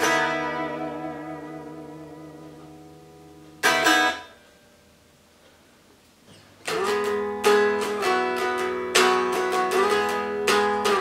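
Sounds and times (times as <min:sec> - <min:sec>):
unplugged electric guitar strummed: 0:00.0 - 0:04.9, 0:06.6 - 0:11.0.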